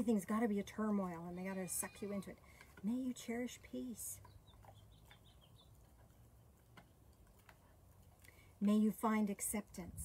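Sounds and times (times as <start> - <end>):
small bird chirping: 4.2 - 6.2.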